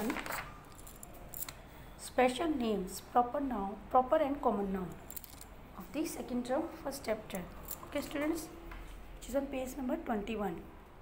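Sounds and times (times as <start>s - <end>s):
paper pages rustling: 0.0s - 1.1s.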